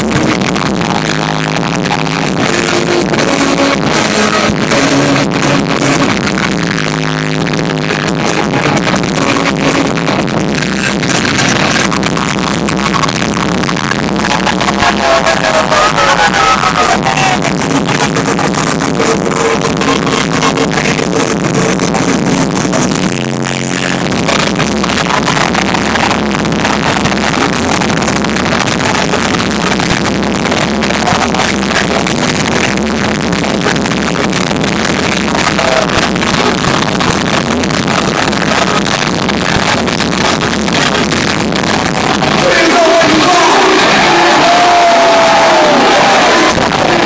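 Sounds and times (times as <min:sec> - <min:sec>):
electronic concert music over pa: 0:00.0 - 0:47.0.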